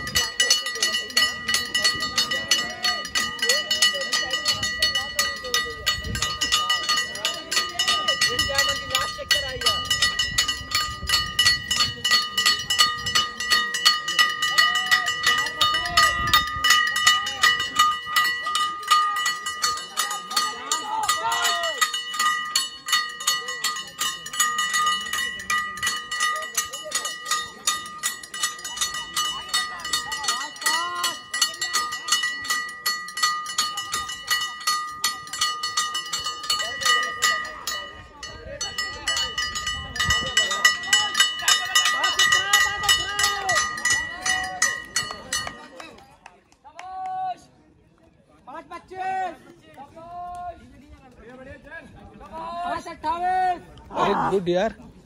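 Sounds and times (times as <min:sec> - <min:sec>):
metal handbell ringing rapidly: 0:00.0 - 0:46.0
faint voices: 0:00.0 - 0:55.0.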